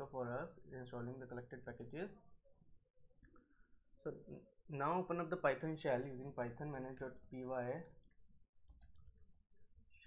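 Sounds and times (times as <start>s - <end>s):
keyboard typing clicks: 7.8s - 9.4s.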